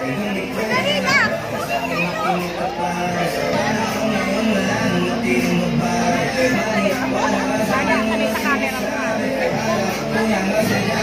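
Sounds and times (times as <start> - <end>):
excited voices shouting and squealing: 0.3 - 5.4.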